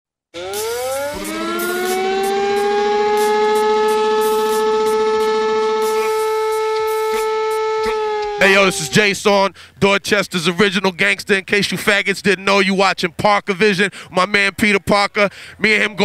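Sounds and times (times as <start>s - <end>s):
rising sustained tone: 0.4s - 9.0s
sharp hits: 0.4s - 9.0s.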